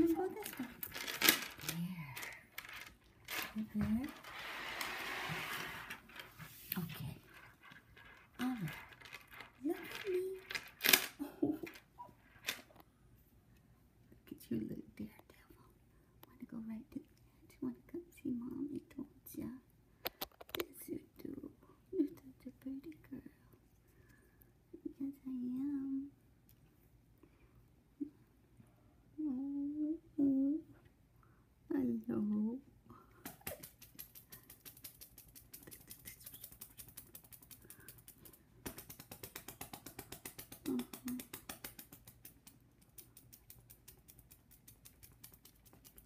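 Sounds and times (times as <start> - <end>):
woman whispering: 0.0 - 0.8, 1.6 - 2.5, 6.7 - 7.4, 9.6 - 10.4, 14.2 - 19.7, 20.6 - 23.6, 24.8 - 26.2, 29.2 - 30.7, 35.6 - 36.9, 40.7 - 41.3
small clicks: 33.2 - 46.0.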